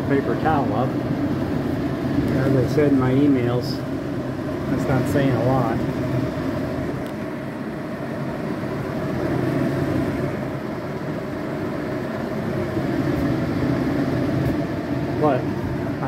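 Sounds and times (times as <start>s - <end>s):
range hood fans whooshing: 0.0s - 16.0s.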